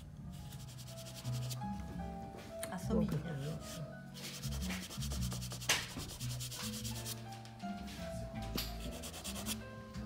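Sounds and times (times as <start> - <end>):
pastel scratching on paper: 0.4 - 1.6, 3.5 - 7.2, 8.8 - 9.6.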